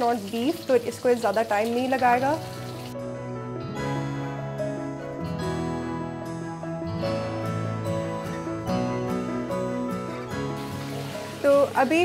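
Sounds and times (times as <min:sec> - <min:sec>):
fish sizzling in hot oil: 0:00.0 - 0:03.0, 0:10.5 - 0:12.0
plucked background music: 0:00.0 - 0:12.0.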